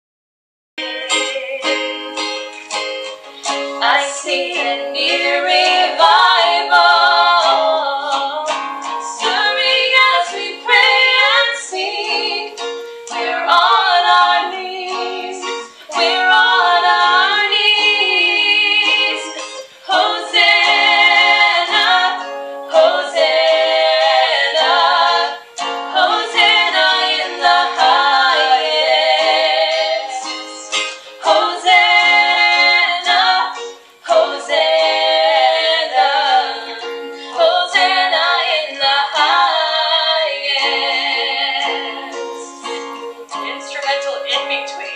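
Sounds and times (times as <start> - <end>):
women singing: 0.8 - 2.3, 3.4 - 44.9
strummed acoustic guitar: 0.8 - 44.9.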